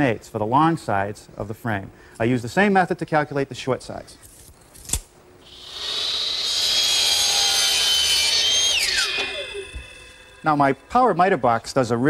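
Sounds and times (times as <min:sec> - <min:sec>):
miter saw cutting wood: 0:05.4 - 0:11.7.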